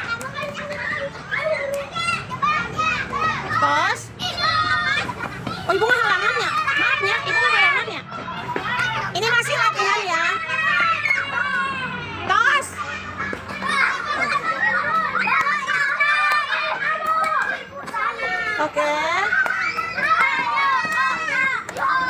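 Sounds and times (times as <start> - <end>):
children shouting and chattering: 0.0 - 22.0.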